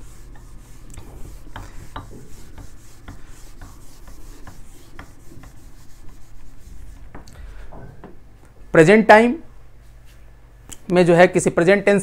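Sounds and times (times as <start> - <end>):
eraser rubbing on whiteboard: 0.0 - 7.2.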